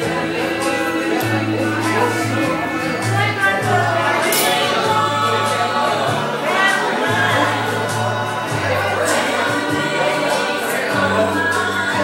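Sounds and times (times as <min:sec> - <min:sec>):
small band playing country song: 0:00.0 - 0:12.0.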